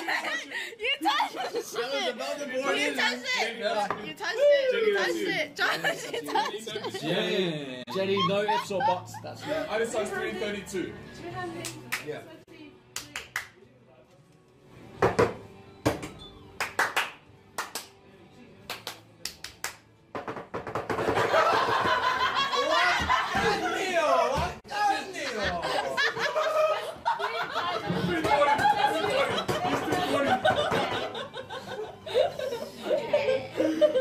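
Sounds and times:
group of people laughing: 0.0s - 2.4s, 5.6s - 10.0s, 21.0s - 24.4s, 25.0s - 34.0s
faint background music: 0.0s - 34.0s
hands clapping: 11.6s - 12.2s, 12.9s - 13.6s, 15.9s - 18.0s, 18.6s - 19.9s, 28.2s - 31.1s.

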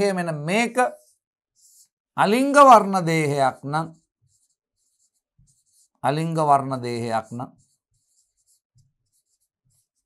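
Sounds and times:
pen scratching on a board: 0.8s - 2.0s, 2.6s - 10.0s.

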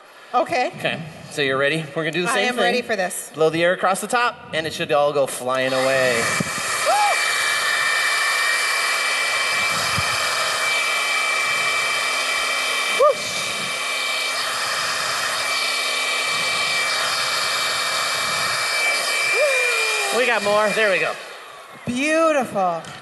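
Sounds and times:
air blower rushing with whine: 4.0s - 23.0s.

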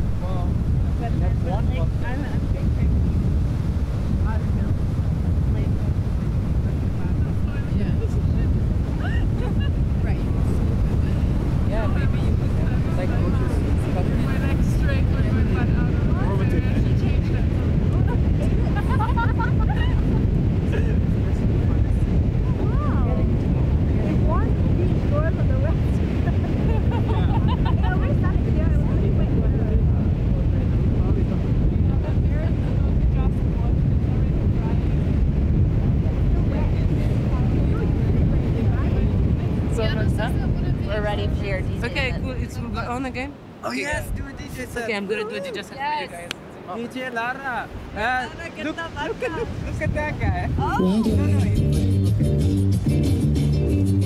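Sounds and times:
faint voices talking: 0.0s - 52.3s
wind rumbling on microphone: 0.0s - 54.0s.

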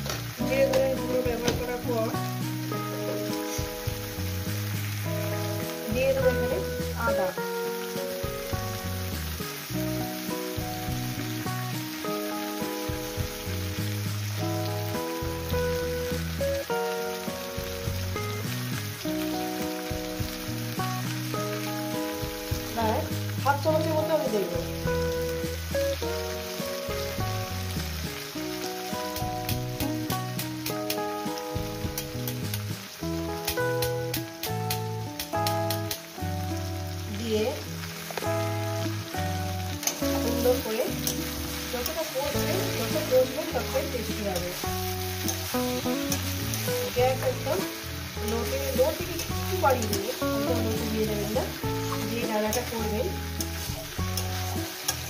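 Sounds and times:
background music: 0.0s - 55.0s
vegetables sizzling in oil: 0.0s - 55.0s.

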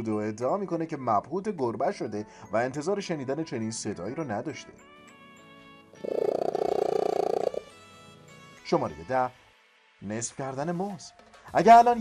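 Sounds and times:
cat purring loudly: 6.0s - 7.7s.

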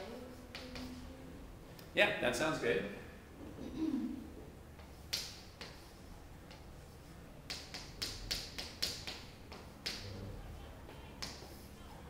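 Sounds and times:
chalk tapping on chalkboard: 4.8s - 6.8s, 7.5s - 10.0s.

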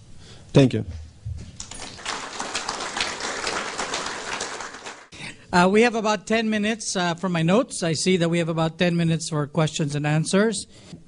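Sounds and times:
audience applauding: 1.6s - 5.2s.

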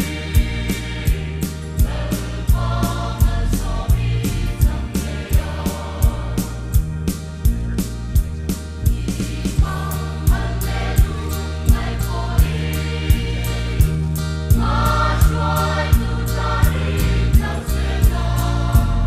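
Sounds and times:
choir singing in harmony: 0.0s - 7.1s, 8.7s - 19.0s
instrumental accompaniment with beat: 0.0s - 19.0s.

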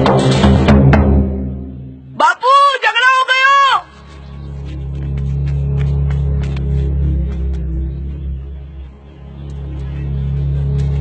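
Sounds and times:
low droning music: 0.0s - 2.2s, 3.9s - 11.0s
loud high-pitched shout: 2.2s - 4.0s.

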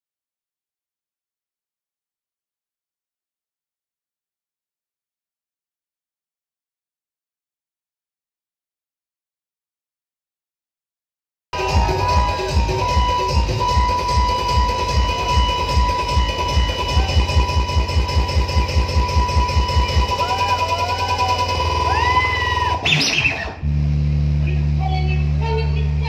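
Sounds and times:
fast kick-drum beat: 11.6s - 22.2s
dance remix music: 11.6s - 23.6s
heavy steady bass: 11.6s - 26.0s.

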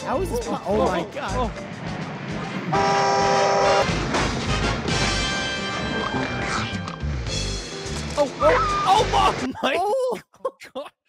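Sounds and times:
film score music: 0.0s - 9.7s
car horn blaring: 2.7s - 3.9s.

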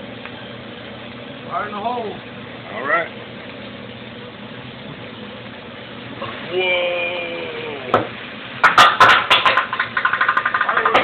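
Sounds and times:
exhaust hood fan humming: 0.0s - 11.0s
food sizzling on hot griddle: 0.0s - 11.0s.

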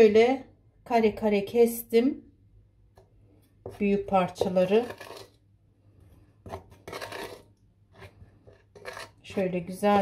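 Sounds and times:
wooden spoon scraping glass dish: 3.6s - 5.4s, 6.4s - 10.0s.

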